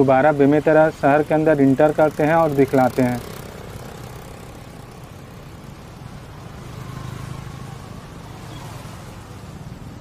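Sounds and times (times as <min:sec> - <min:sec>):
car approaching: 0:00.0 - 0:10.0
road traffic: 0:00.0 - 0:10.0
vehicle engine humming: 0:00.0 - 0:10.0.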